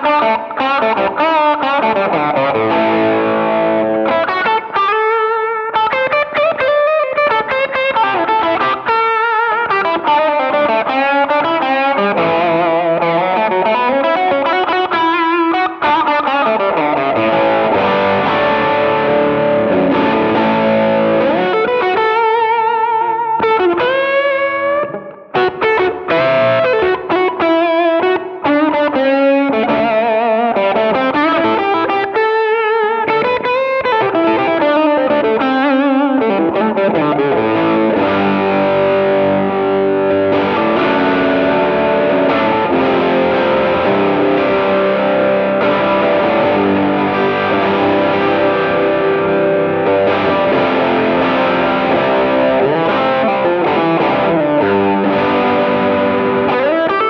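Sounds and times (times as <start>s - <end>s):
distorted electric guitar lead: 0.0s - 57.0s.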